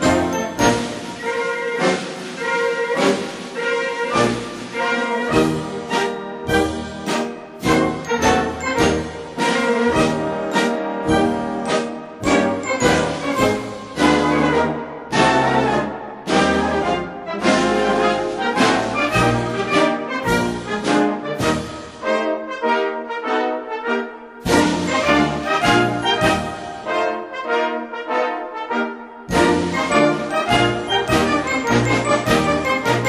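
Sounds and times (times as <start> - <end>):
military band playing a march: 0.0 - 33.0.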